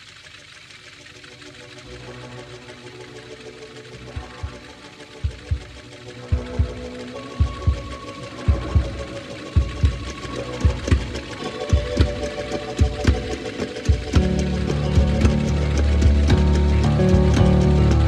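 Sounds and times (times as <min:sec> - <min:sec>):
sustained synthesizer drone: 0:00.0 - 0:18.0.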